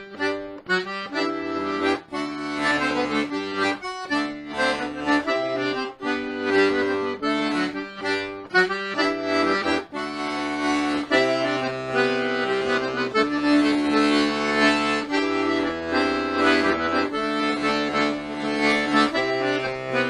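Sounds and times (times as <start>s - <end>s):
button accordion playing a jig: 0.0s - 20.0s.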